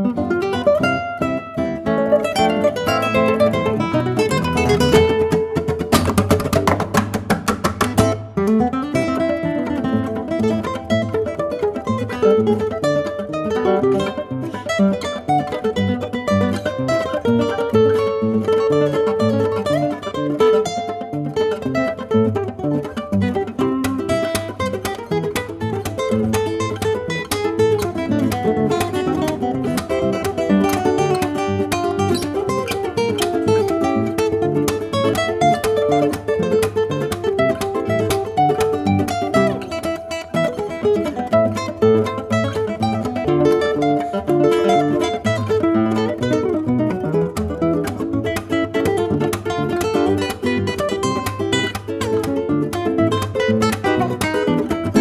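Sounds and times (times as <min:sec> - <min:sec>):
classical guitar duet: 0:00.0 - 0:55.0.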